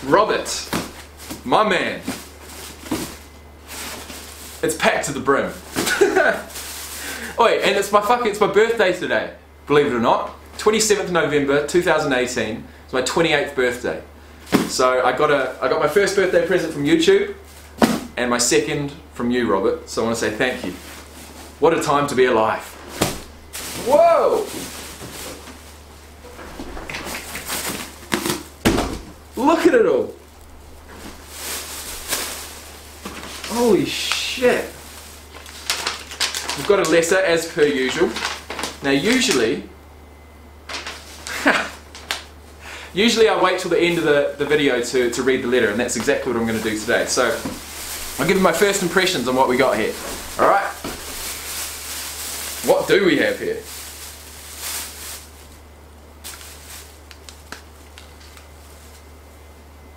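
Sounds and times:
plastic bag rustling and crinkling: 0:00.0 - 0:08.4, 0:20.1 - 0:39.5, 0:40.7 - 0:59.5
low room hum: 0:00.0 - 0:59.9
cloth towel handling: 0:20.4 - 0:28.0.

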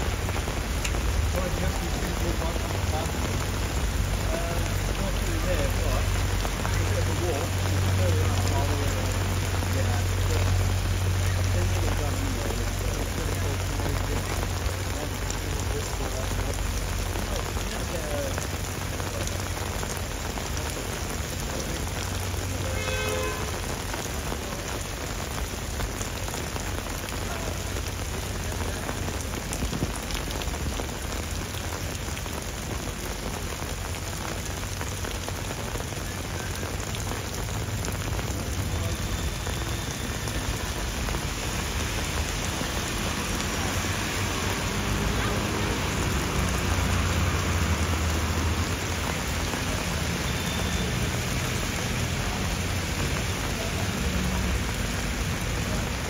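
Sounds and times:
heavy rain on hard ground: 0:00.0 - 0:56.0.

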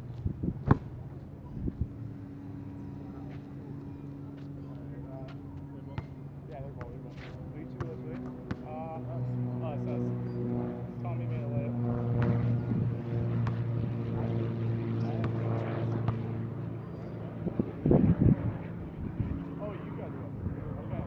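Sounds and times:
engine drone: 0:00.0 - 0:21.0.

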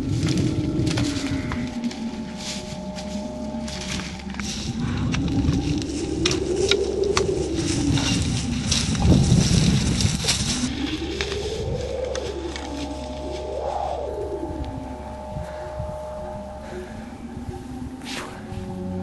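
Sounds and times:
slow gliding synth tones: 0:00.0 - 0:19.0
twigs crackling underfoot in brush: 0:00.0 - 0:19.0.

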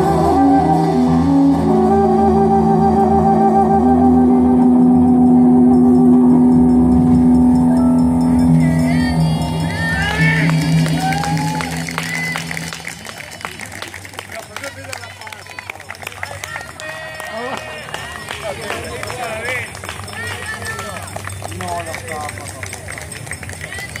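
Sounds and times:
band held notes: 0:00.0 - 0:14.3
crowd voices calling out: 0:04.2 - 0:14.0.

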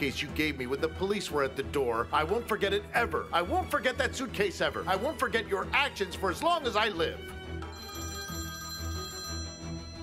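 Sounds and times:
background music: 0:00.0 - 0:10.0
telephone ringing: 0:07.6 - 0:10.0.

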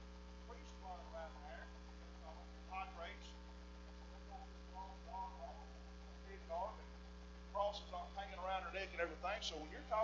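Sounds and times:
low electrical hum: 0:00.0 - 0:10.0
man speaking: 0:00.5 - 0:03.4, 0:06.2 - 0:06.9, 0:07.5 - 0:10.0.

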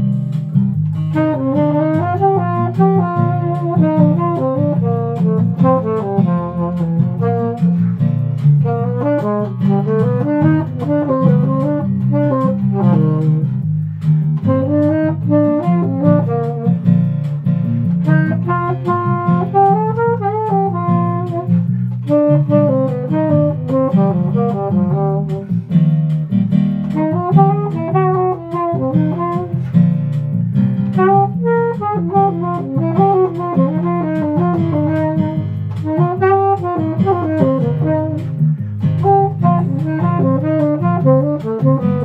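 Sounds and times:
low accompaniment: 0:00.0 - 0:42.0
saxophone melody: 0:00.8 - 0:42.0.

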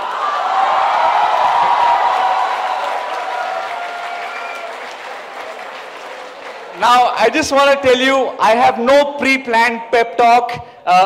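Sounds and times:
voices cheering: 0:00.0 - 0:07.5
audience applauding: 0:00.0 - 0:07.8.

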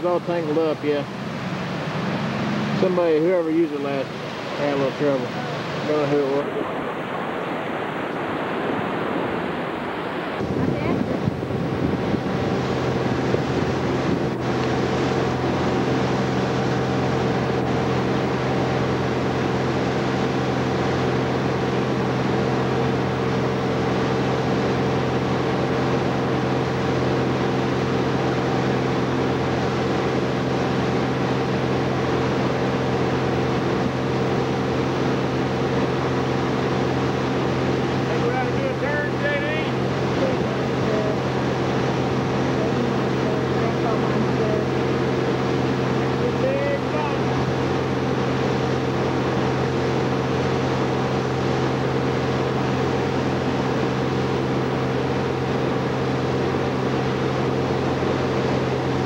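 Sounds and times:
motorboat engine running: 0:00.0 - 0:59.0
rushing water: 0:00.0 - 0:59.0
wind on microphone: 0:04.0 - 0:27.3.

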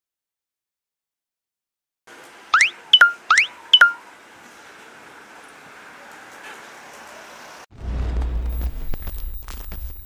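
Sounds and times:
faint street background: 0:02.1 - 0:10.0.

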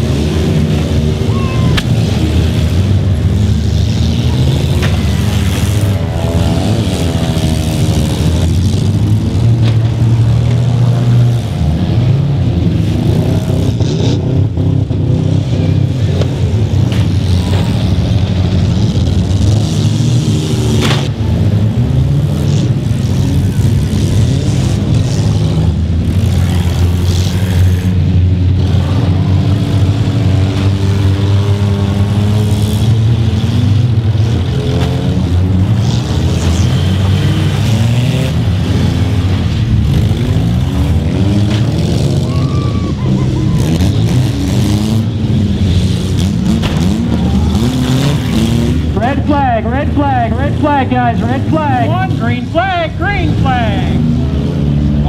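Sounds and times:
car engines revving: 0:00.0 - 0:55.0.

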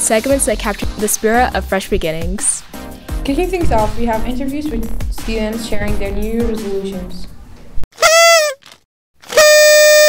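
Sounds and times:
horn tooting: 0:08.0 - 0:10.0.

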